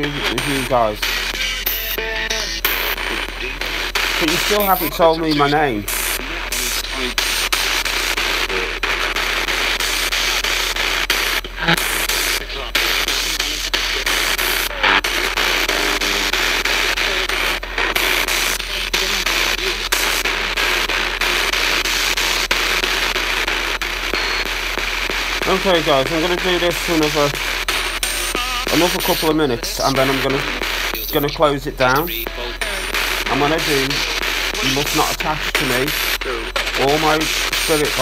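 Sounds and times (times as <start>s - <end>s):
radio static scanning stations: 0.0s - 38.0s
snatches of broadcast voices: 0.0s - 38.0s.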